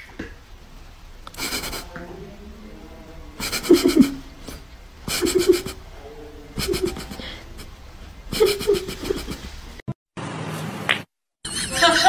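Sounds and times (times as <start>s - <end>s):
faint room noise: 0.0s - 10.9s.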